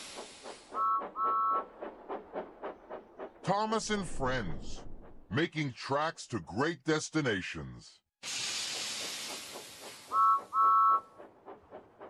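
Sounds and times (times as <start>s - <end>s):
steam hiss: 0.0s - 0.8s, 8.2s - 10.8s
locomotive chuffing: 0.0s - 5.4s, 8.3s - 12.0s
two-note train whistle toots: 10.1s - 11.1s.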